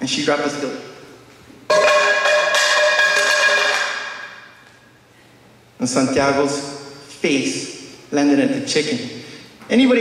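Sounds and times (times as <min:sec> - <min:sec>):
metallic clang ringing: 0:01.7 - 0:04.6.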